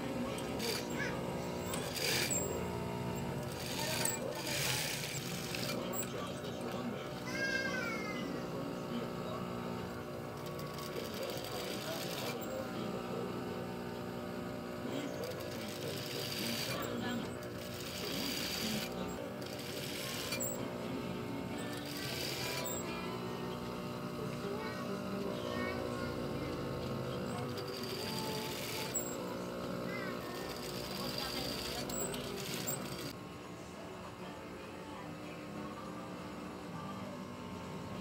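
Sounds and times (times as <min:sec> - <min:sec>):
sewing machine humming: 0:00.0 - 0:33.2
voices: 0:00.0 - 0:38.0.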